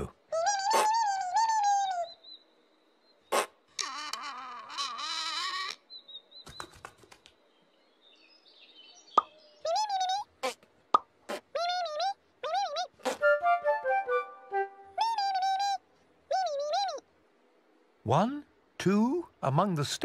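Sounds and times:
squeaky gliding puppet calls: 0.3s - 2.2s, 3.3s - 5.9s, 9.6s - 10.6s, 11.3s - 14.2s, 14.9s - 17.0s.

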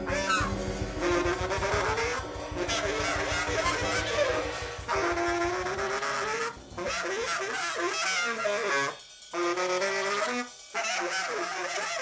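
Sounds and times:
saxophone improvising free jazz: 0.0s - 12.0s.

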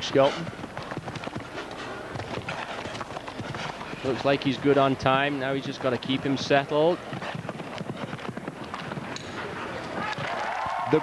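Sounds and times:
hoofbeats on grass: 0.0s - 11.0s.

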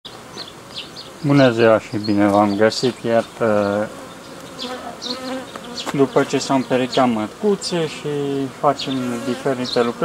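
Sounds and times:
honeybees buzzing: 0.1s - 10.0s.

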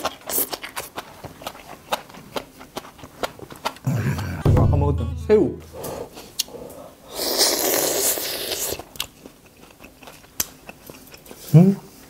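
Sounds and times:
biting and chewing: 0.0s - 4.4s, 8.6s - 11.5s.

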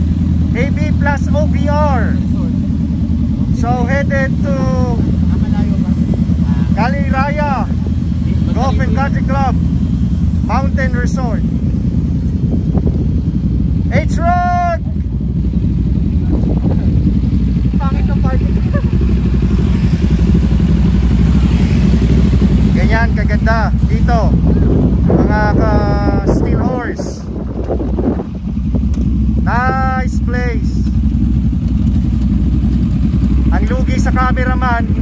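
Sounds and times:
motorcycle engines idling: 0.0s - 35.0s
people calling out: 3.5s - 9.7s.

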